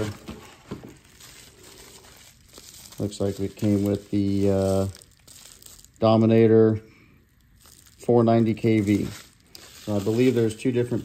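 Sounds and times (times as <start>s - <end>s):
bubble wrap and cardboard rustling: 0.0s - 11.0s.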